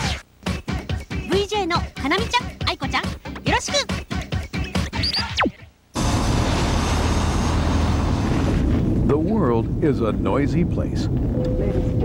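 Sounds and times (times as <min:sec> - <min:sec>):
low hum: 0:04.9 - 0:12.0.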